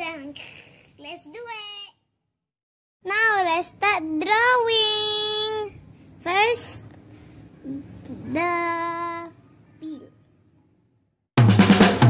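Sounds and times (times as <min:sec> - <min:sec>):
rapid drum strikes: 0:11.4 - 0:12.0.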